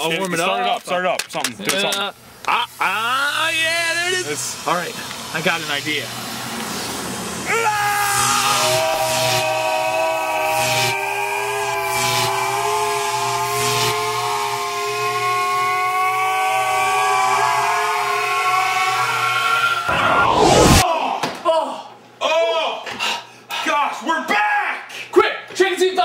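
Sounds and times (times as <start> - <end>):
sharp downward swoosh: 19.8 - 20.8
low hum: 19.9 - 20.8
whooshing sweeps: 19.9 - 20.8.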